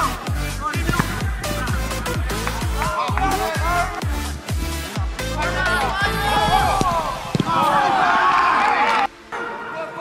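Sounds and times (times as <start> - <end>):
players shouting: 0.0 - 4.0, 5.3 - 9.1
ball kicks: 0.8 - 1.7, 6.4 - 8.0.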